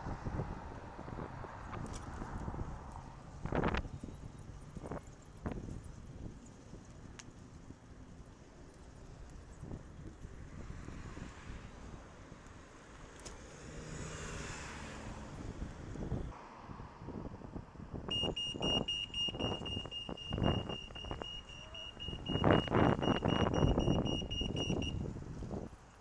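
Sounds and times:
wind noise on microphone: 0.0s - 7.8s, 9.0s - 12.6s, 15.2s - 25.9s
high-pitched crossing signal beeping: 18.1s - 25.0s.

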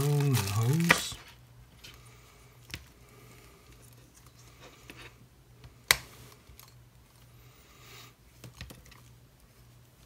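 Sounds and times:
cable rustling: 0.0s - 2.0s.

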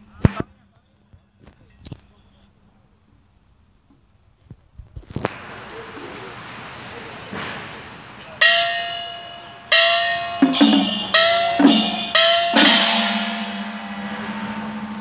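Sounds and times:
higher gong pitch bending up: 8.4s - 15.0s
lower gong pitch bending down: 8.4s - 15.0s.

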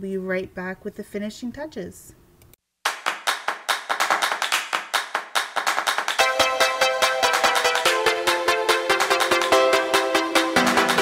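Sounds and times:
clap-like percussion hits: 2.8s - 11.0s
electronic music: 5.6s - 11.0s.

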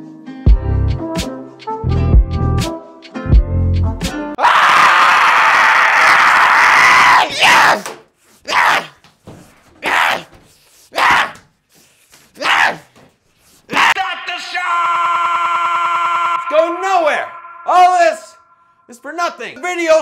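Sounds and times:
man screaming: 4.4s - 7.8s, 8.5s - 9.0s, 9.8s - 10.3s, 12.4s - 12.9s, 13.7s - 19.1s.

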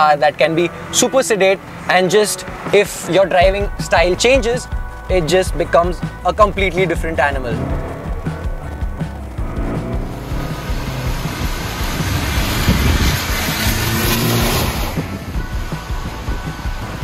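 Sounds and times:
background music: 0.0s - 17.0s
car tyres on wet road: 6.8s - 17.0s.

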